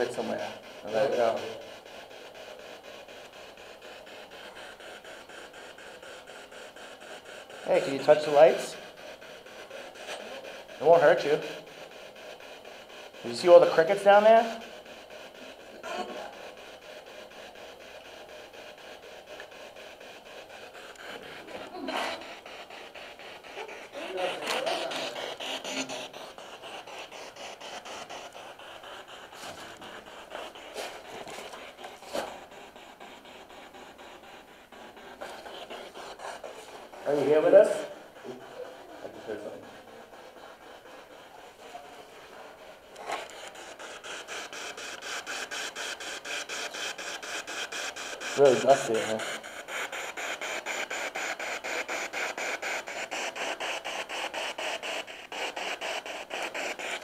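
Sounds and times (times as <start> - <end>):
fast even ticks: 0.0 - 57.0.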